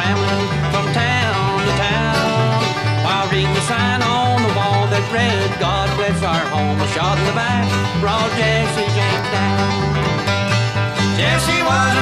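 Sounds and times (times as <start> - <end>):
banjo picking: 0.0 - 12.0
bass line: 0.0 - 12.0
guitar picking: 0.0 - 12.0.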